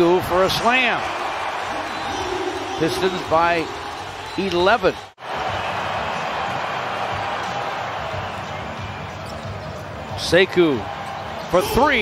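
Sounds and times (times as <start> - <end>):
arena crowd hum: 0.0 - 12.0.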